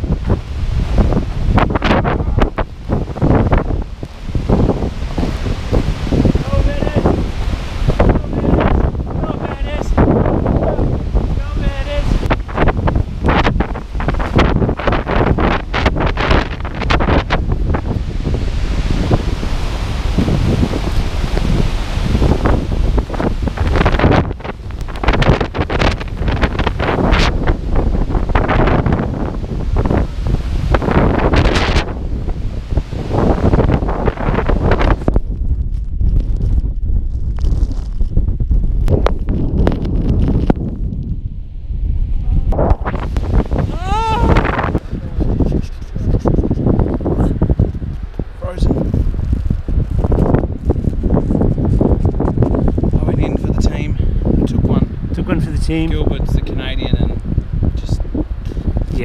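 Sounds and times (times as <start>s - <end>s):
wind buffeting a microphone: 0.0s - 59.0s.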